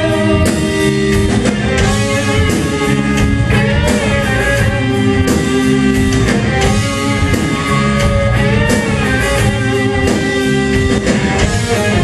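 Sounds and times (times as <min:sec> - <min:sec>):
drum kit: 0:00.0 - 0:12.0
electric guitars: 0:00.0 - 0:12.0.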